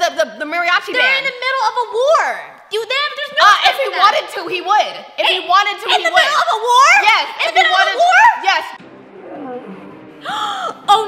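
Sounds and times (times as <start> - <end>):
woman gasping: 10.2 - 10.9.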